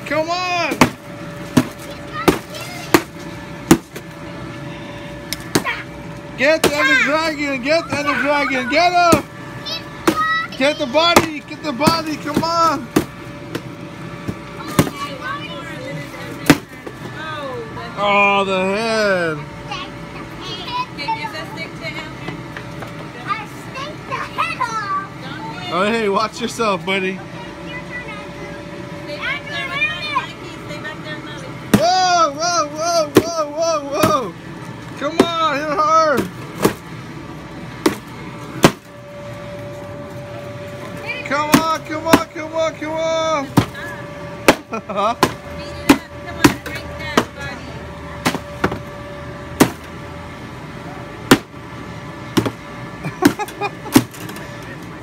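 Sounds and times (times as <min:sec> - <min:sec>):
stick striking cardboard pinata: 0:00.7 - 0:04.0, 0:05.3 - 0:05.8, 0:06.6 - 0:07.0, 0:09.0 - 0:09.3, 0:10.0 - 0:10.3, 0:11.0 - 0:13.7, 0:14.3 - 0:15.1, 0:16.4 - 0:16.9, 0:31.7 - 0:32.1, 0:33.0 - 0:34.3, 0:35.1 - 0:35.4, 0:36.2 - 0:36.8, 0:37.8 - 0:38.9, 0:41.5 - 0:42.4, 0:43.5 - 0:43.8, 0:44.4 - 0:47.4, 0:48.2 - 0:48.8, 0:49.6 - 0:49.9, 0:51.3 - 0:51.5, 0:52.4 - 0:52.6, 0:53.2 - 0:54.3.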